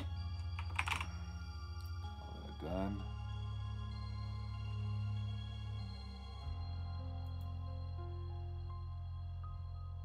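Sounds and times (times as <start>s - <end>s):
soft background music: 0.0s - 10.0s
typing on computer keyboard: 0.6s - 1.1s.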